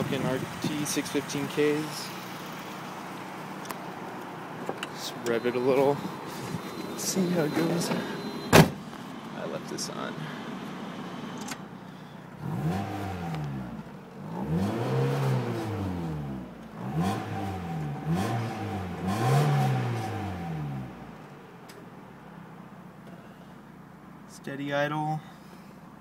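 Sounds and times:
car engine revving and idling: 0:00.0 - 0:24.3.

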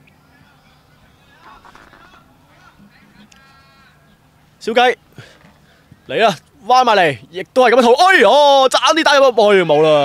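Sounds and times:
faint background noise: 0:00.0 - 0:10.0.

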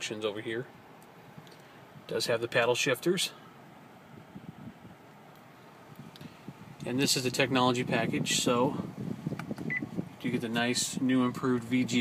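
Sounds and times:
car engine idling quietly: 0:00.0 - 0:12.0.

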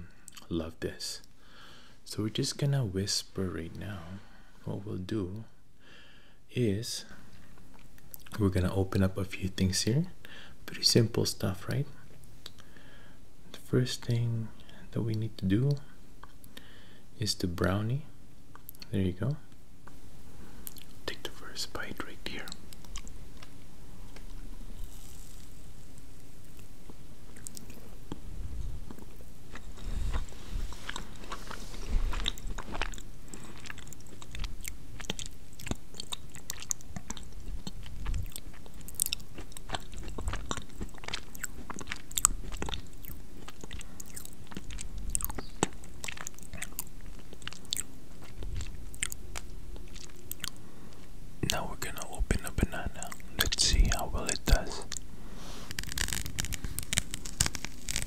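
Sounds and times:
close-up chewing: 0:22.5 - 0:58.0
mouth smacks: 0:28.9 - 0:50.6.

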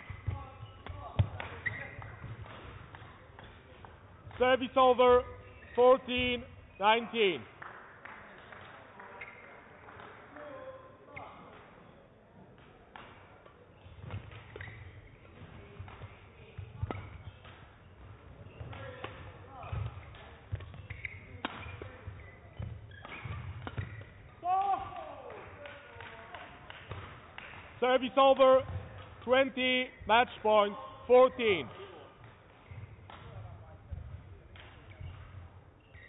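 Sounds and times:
racket striking shuttlecock: 0:18.6 - 0:24.2.

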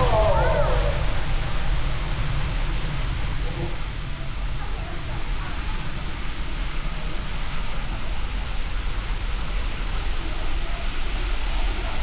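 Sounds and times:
rushing waterfall with deep rumble: 0:00.0 - 0:12.0.

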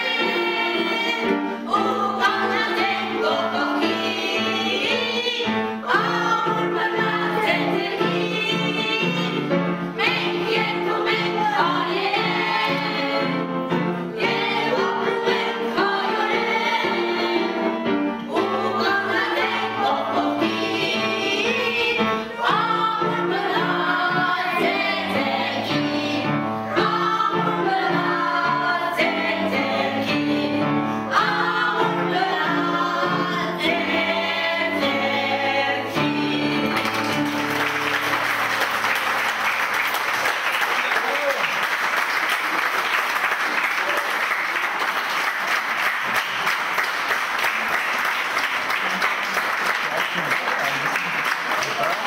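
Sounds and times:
group of voices singing: 0:00.0 - 0:38.6
audience applause: 0:36.7 - 0:52.0.

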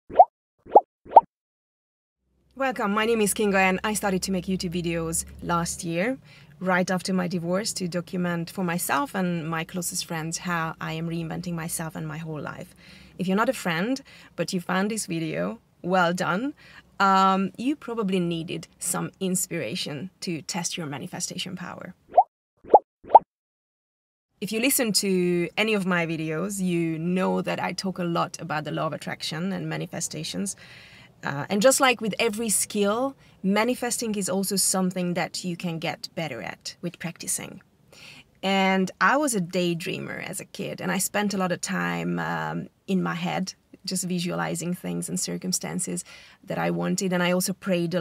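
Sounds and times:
rising bloop pop effects: 0:00.1 - 0:01.3, 0:22.1 - 0:23.3.

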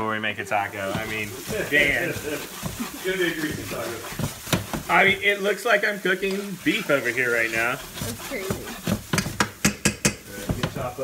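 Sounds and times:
light sizzle: 0:00.0 - 0:11.0
spoon knocking on skillet: 0:00.7 - 0:11.0.

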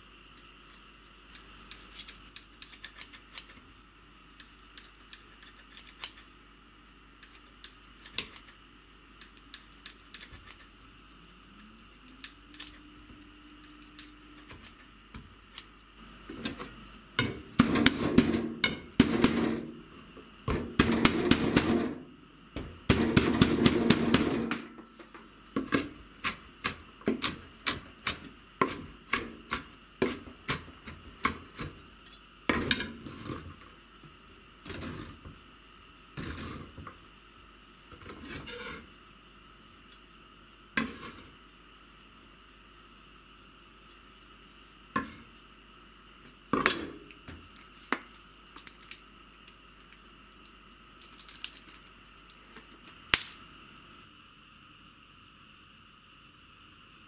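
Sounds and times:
knife scraping board: 0:34.7 - 0:35.2, 0:36.2 - 0:36.8, 0:37.9 - 0:38.9, 0:40.8 - 0:41.3.

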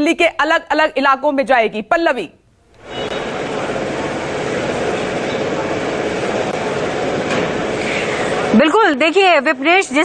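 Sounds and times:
loud outdoor background noise: 0:00.0 - 0:10.0.

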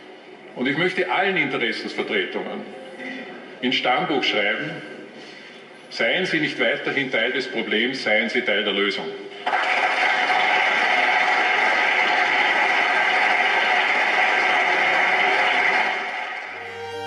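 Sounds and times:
many people clapping: 0:09.4 - 0:17.0
music: 0:16.5 - 0:17.0.

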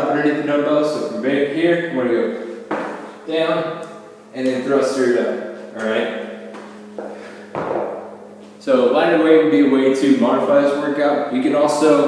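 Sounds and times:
dumbbell thud on rubber mat: 0:07.5 - 0:07.9.

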